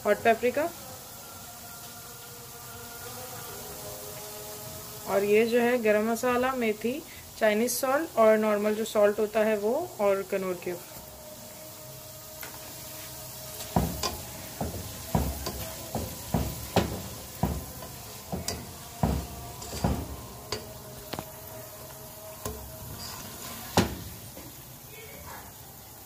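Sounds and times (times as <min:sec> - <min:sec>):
potatoes sizzling in hot oil: 0:00.0 - 0:26.0
spatula scraping a pan: 0:10.8 - 0:24.6
spoon stirring potatoes in oil: 0:12.0 - 0:24.8
spoon knocking against pot: 0:13.6 - 0:20.7.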